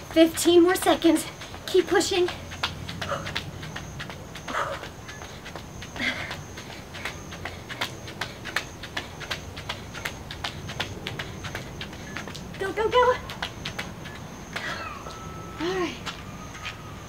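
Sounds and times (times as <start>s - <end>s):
sneaker footfalls on exercise mat: 0.0s - 14.9s.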